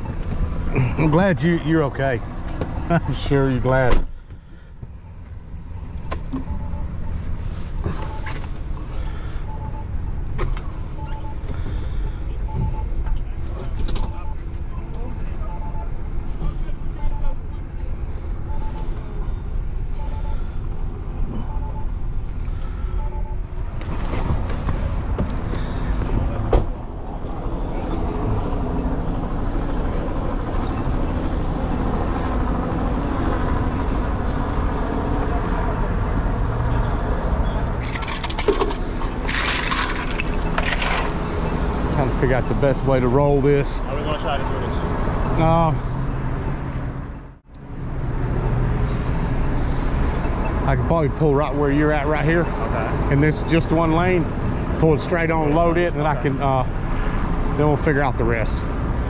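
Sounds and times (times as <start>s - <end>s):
street traffic and engine noise: 0.0s - 59.0s
car warning chime beeping: 5.0s - 8.4s, 9.0s - 10.1s, 10.8s - 11.8s, 19.9s - 23.8s.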